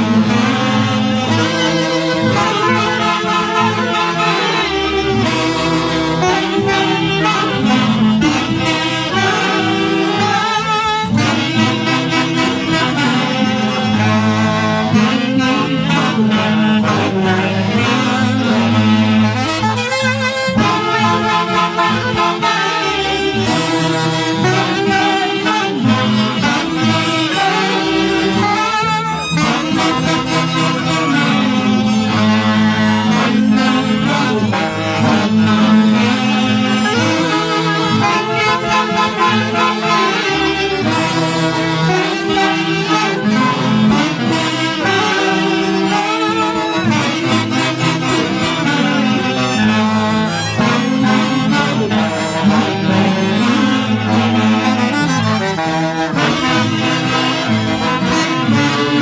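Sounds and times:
saxophone band playing dance tune: 0:00.0 - 0:59.0.

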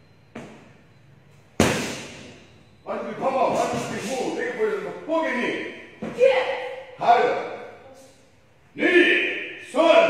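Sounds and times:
sharp cracks echoing in hall: 0:01.6 - 0:02.4.

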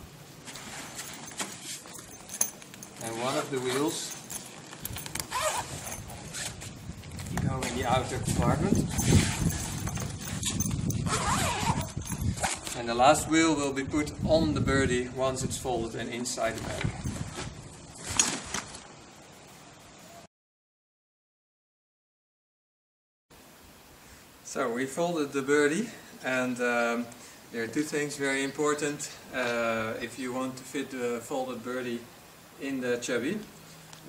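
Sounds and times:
zipper being pulled: 0:00.4 - 0:06.7, 0:08.7 - 0:12.8
bag fabric rustling: 0:00.4 - 0:12.8, 0:16.4 - 0:18.9
faint hiss: 0:23.4 - 0:34.0.

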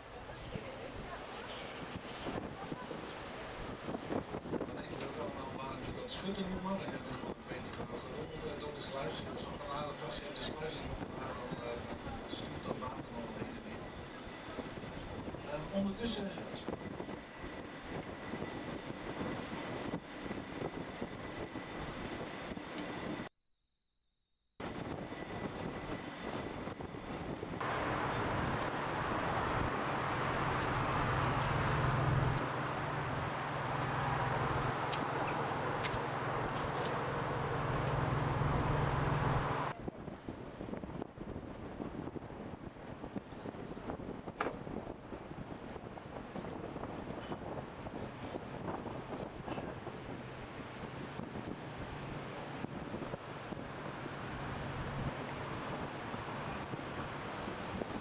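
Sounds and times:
wind buffeting microphone: 0:00.0 - 0:23.3, 0:24.6 - 0:58.0
steady low hum: 0:24.6 - 0:39.9
boat engine: 0:27.2 - 0:39.8, 0:44.5 - 0:58.0
water rushing past hull: 0:27.6 - 0:39.7.

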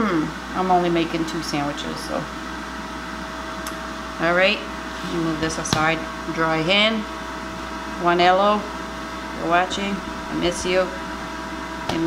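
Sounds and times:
air fryer fan hum with whine: 0:00.0 - 0:12.0.

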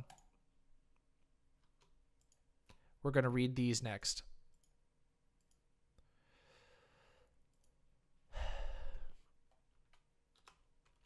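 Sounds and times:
person breathing and sighing: 0:06.0 - 0:07.4, 0:08.3 - 0:09.4.

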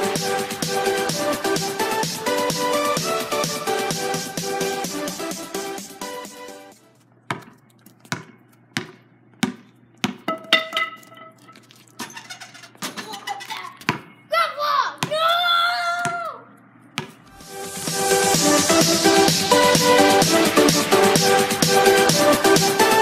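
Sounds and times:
basketball dribbled on pavement: 0:07.2 - 0:11.3, 0:13.7 - 0:14.2, 0:15.0 - 0:15.4, 0:16.0 - 0:16.2, 0:16.9 - 0:17.4
electronic intro music: 0:17.3 - 0:23.0.

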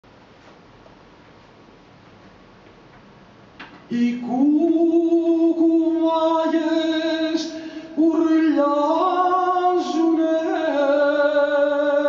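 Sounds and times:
faint steady hiss: 0:00.0 - 0:12.0
breath-like noise: 0:07.5 - 0:08.0.

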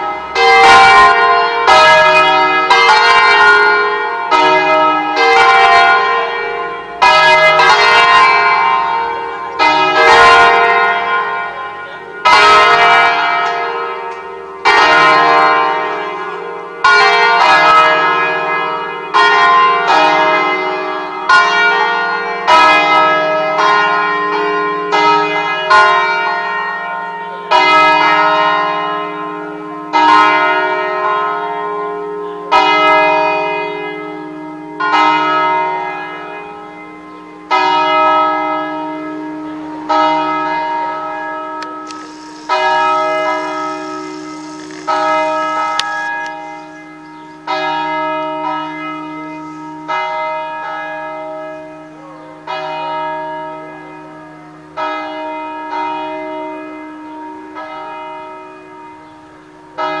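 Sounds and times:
church bells ringing: 0:00.0 - 1:00.0.

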